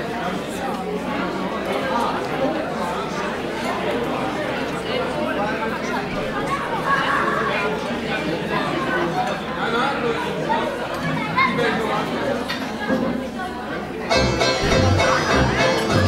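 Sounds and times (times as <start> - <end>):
crowd chattering: 0.0 - 16.0.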